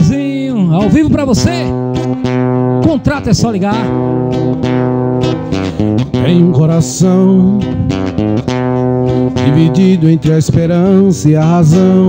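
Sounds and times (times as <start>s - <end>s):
man singing into a microphone: 0.0s - 1.8s, 2.8s - 4.0s, 6.1s - 7.9s, 9.3s - 12.0s
acoustic guitar: 0.0s - 12.0s.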